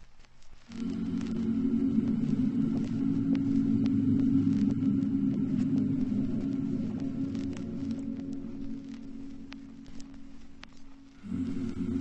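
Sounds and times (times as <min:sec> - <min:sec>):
low droning hum: 0:00.6 - 0:12.0.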